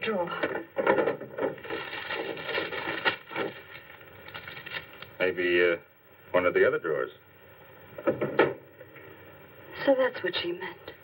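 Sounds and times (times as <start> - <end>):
background hum: 0.0 - 11.0
papers rustling: 1.3 - 5.2.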